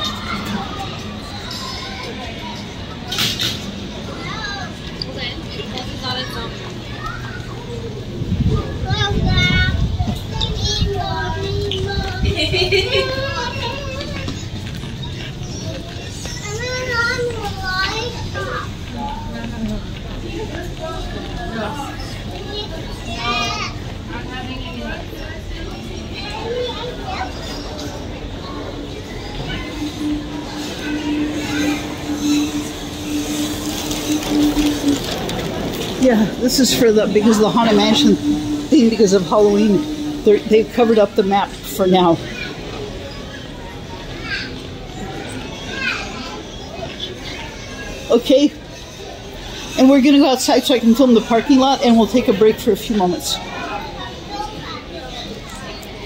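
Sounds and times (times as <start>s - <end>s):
background chatter: 0.0s - 56.0s
child's high-pitched voice: 6.7s - 14.8s, 15.5s - 19.2s, 26.2s - 29.7s, 40.8s - 48.1s.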